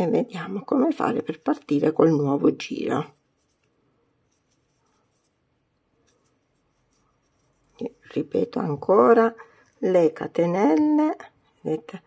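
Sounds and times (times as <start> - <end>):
crochet hook rustling through yarn: 0.0 - 10.4.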